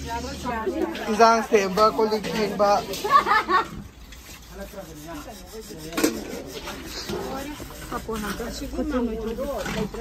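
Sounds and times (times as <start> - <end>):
scrubber scraping metal pots: 0.0 - 10.0.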